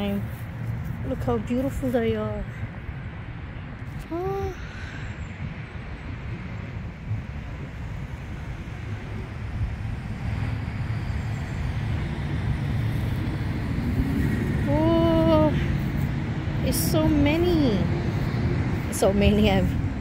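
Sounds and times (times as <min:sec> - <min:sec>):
outdoor background rumble: 0:00.0 - 0:20.0.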